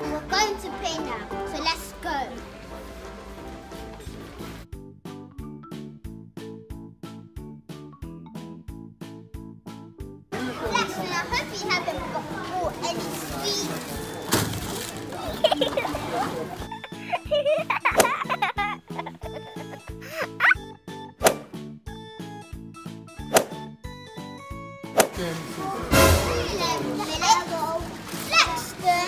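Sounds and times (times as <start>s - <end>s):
background music: 0.0s - 29.0s
supermarket hubbub: 10.3s - 18.4s, 24.9s - 29.0s
children squealing and chattering: 10.4s - 20.6s.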